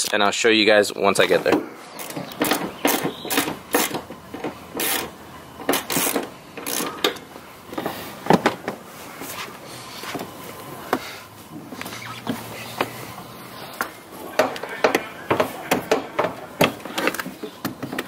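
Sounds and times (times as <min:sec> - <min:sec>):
truck seat clicks and clunks: 0:01.4 - 0:08.8, 0:11.6 - 0:18.0.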